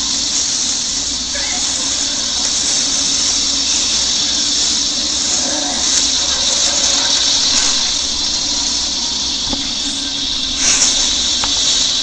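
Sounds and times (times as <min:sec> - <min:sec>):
loud high hiss: 0:00.0 - 0:12.0.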